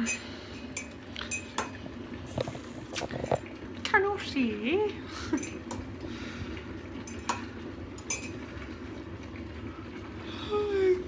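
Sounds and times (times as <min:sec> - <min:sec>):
low kitchen rumble: 0:00.0 - 0:11.0.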